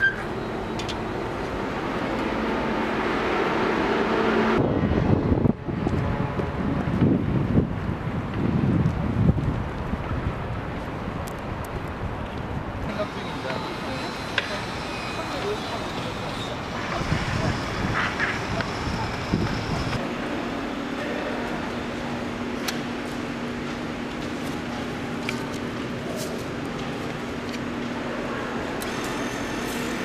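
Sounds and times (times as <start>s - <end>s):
street traffic: 0.0s - 30.0s
wind on microphone: 4.3s - 12.9s, 16.6s - 20.0s.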